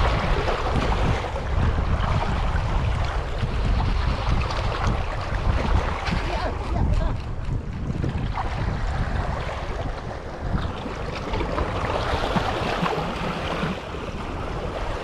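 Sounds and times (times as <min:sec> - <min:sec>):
small waves against rocks: 0:00.0 - 0:15.0
wind buffeting microphone: 0:00.0 - 0:15.0.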